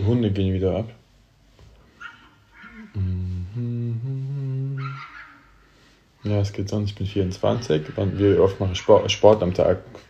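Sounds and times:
man humming mm-hmm: 0:02.9 - 0:05.0.

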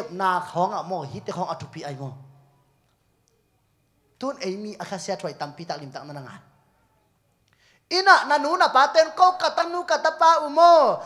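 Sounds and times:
man speaking into microphone: 0:00.0 - 0:02.3, 0:04.2 - 0:06.5, 0:07.9 - 0:11.0.

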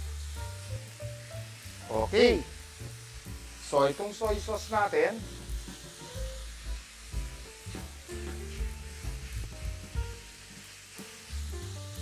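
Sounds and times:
sauce sizzling in a frying pan: 0:00.0 - 0:12.0
soft background music: 0:00.0 - 0:12.0.

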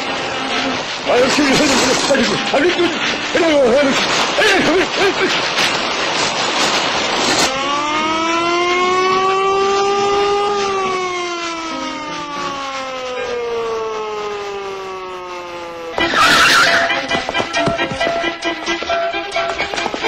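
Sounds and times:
rushing noise: 0:00.0 - 0:20.0
sliding pitched cartoon tone: 0:15.9 - 0:18.3.

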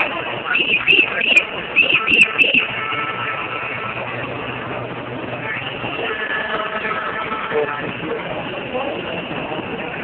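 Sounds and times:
crowd walking on pavement: 0:00.0 - 0:10.0.

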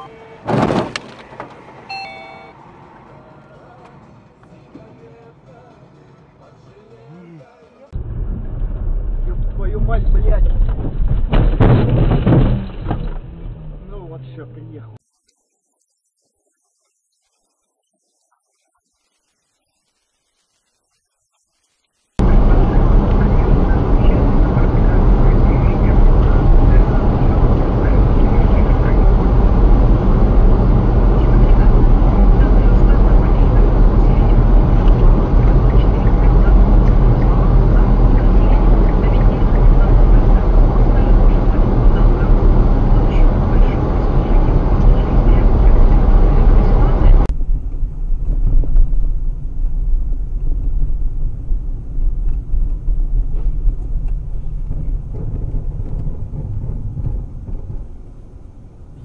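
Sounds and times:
car rumble on road: 0:00.0 - 0:05.3, 0:07.9 - 0:15.0, 0:22.2 - 0:59.0
quieter low rumble: 0:08.0 - 0:14.0, 0:22.2 - 0:59.0.

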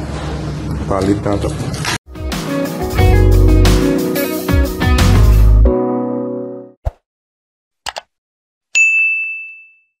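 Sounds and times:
bright notification bell ding: 0:08.8 - 0:10.0.

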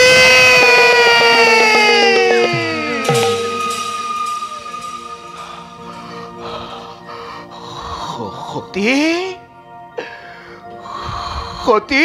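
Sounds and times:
faint percussion beats: 0:00.0 - 0:07.5
musical drone: 0:00.0 - 0:10.1.

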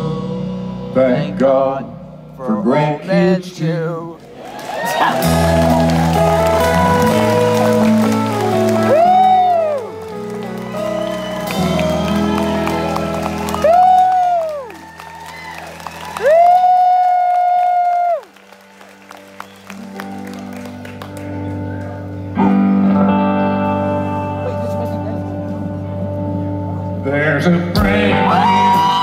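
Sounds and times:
audience clapping and cheering: 0:04.2 - 0:22.5, 0:28.2 - 0:29.0
country band playing: 0:04.8 - 0:29.0.

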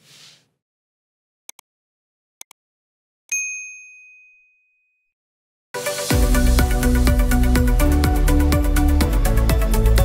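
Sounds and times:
notification bell ding: 0:03.3 - 0:05.0.

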